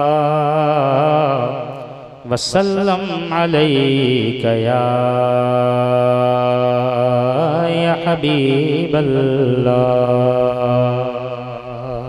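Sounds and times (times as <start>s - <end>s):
man singing long note: 0.0s - 12.0s.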